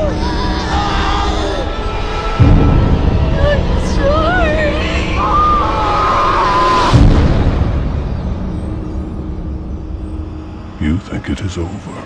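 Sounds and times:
deep boom rumbling: 2.3 - 5.8, 6.8 - 11.2.

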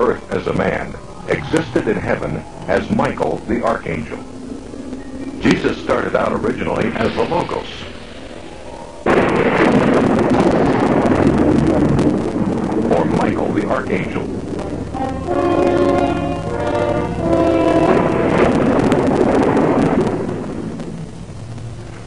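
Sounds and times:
loud rumbling: 0.0 - 22.0
held chords: 12.4 - 22.0.

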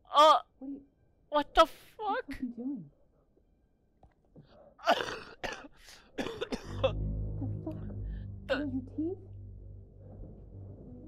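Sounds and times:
young man coughing harshly: 4.8 - 7.0.

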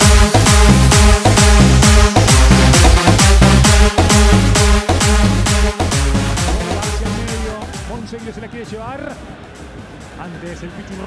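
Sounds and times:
background music: 0.0 - 11.0
loud electronic music: 0.0 - 11.0
man commentating: 6.4 - 9.2.

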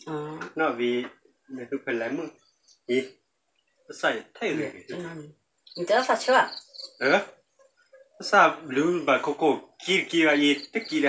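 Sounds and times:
cricket chirping: 0.0 - 11.0
person talking: 0.1 - 2.3, 4.0 - 7.2, 8.2 - 11.0.

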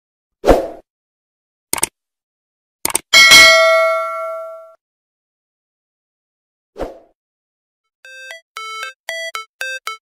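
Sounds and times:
quick double clicks: 1.7 - 2.0, 2.8 - 3.1
bell ding: 3.2 - 4.8.

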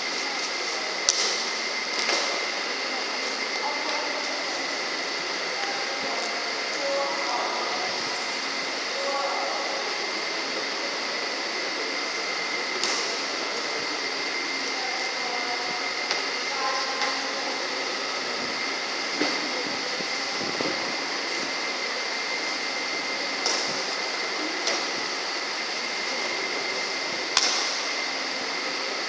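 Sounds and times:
steady fan hum: 0.0 - 29.0
racket striking shuttlecock: 1.1 - 1.4, 27.4 - 27.7.

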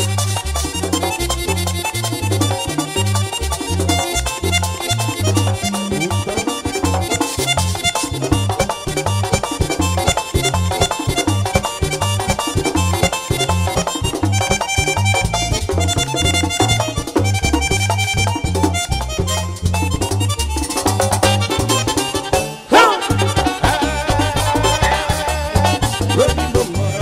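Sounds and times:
accordion: 0.0 - 27.0
live band playing: 0.0 - 27.0
repeating bass pattern: 0.0 - 27.0.

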